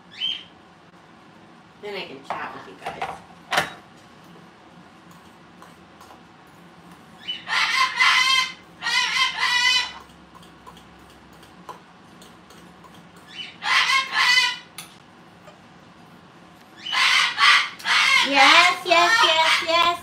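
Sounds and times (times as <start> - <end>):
parrot calling: 0.1 - 0.5, 7.2 - 10.1, 13.2 - 14.8, 16.8 - 20.0.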